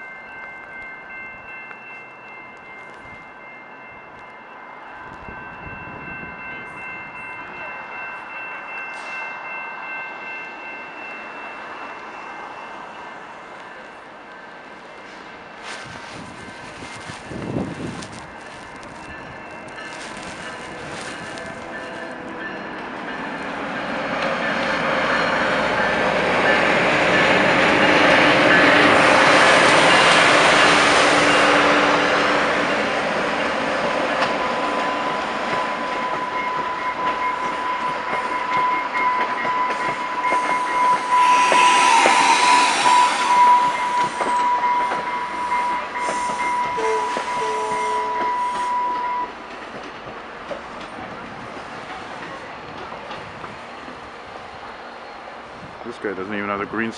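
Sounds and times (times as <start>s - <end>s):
train pulling into station: 0.0s - 56.9s
high squeal of train brakes: 8.8s - 9.4s, 35.6s - 49.4s.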